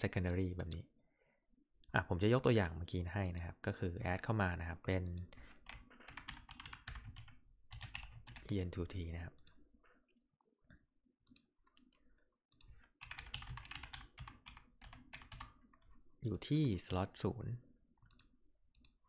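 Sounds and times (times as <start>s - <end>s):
typing on computer keyboard: 5.0s - 8.6s, 12.5s - 15.9s.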